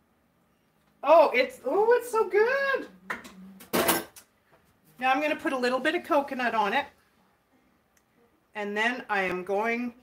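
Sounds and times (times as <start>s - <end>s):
dishware clattering: 3.7s - 4.2s.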